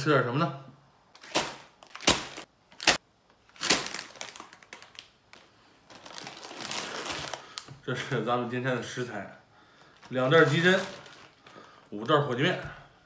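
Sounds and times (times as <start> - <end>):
plastic packets crinkling: 1.2 - 7.8, 9.8 - 12.4.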